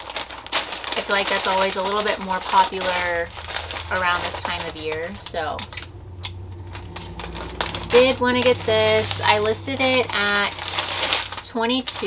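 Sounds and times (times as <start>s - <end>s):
packing paper rustling and crinkling: 0.0s - 5.9s, 6.5s - 12.0s
person speaking: 1.0s - 5.7s, 7.5s - 12.0s.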